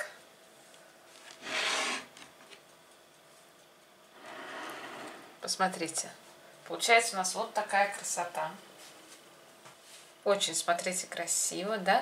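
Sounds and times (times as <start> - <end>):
short rubbing scraping noise: 1.4 - 2.2, 4.2 - 5.4.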